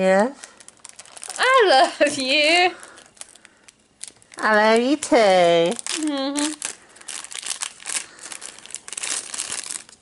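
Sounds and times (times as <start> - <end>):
gift wrapping crinkling: 0.2 - 10.0.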